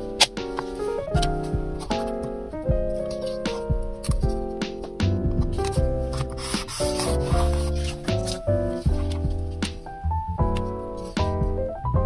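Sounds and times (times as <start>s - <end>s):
light piano music: 0.0s - 12.0s
paper sticker rustling: 2.9s - 4.3s, 5.5s - 9.7s.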